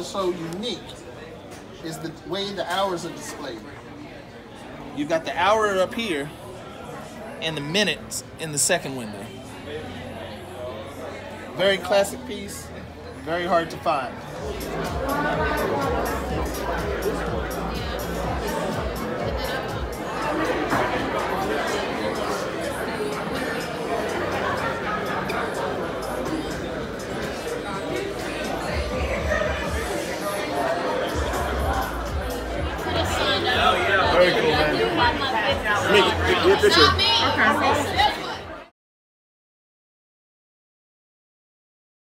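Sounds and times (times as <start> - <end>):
crowd chatter: 0.0 - 38.7
music playing: 13.3 - 38.5.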